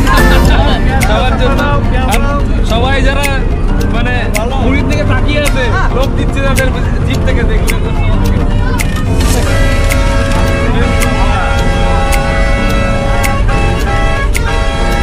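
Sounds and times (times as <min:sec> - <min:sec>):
bus engine rumble: 0:00.0 - 0:15.0
music with a steady beat: 0:00.0 - 0:15.0.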